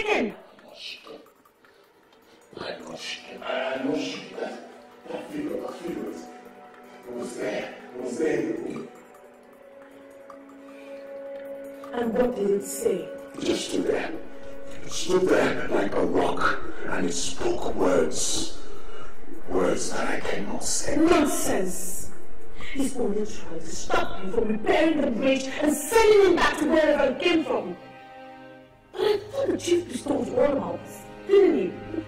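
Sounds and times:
background music sustained notes: 0.0 - 32.0.

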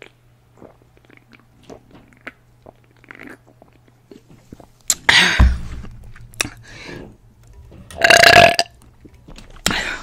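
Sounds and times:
woman burping: 8.0 - 8.7.

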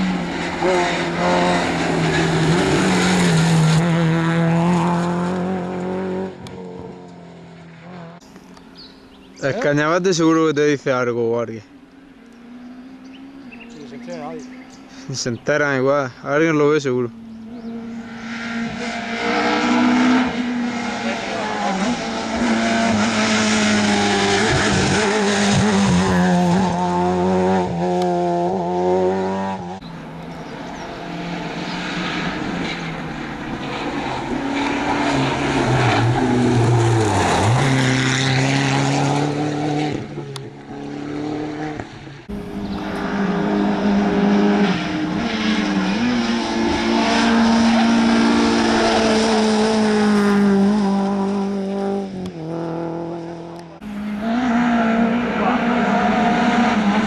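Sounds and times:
rally cars revving past: 0.0 - 11.0, 12.2 - 57.0.

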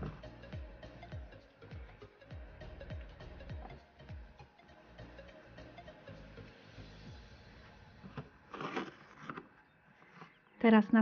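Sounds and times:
cord rustling and scraping: 8.0 - 10.4.

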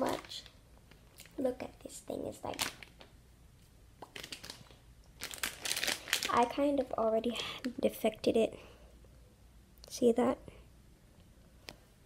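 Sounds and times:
plastic packaging crinkling: 0.0 - 1.5, 2.2 - 3.1, 4.0 - 7.0.

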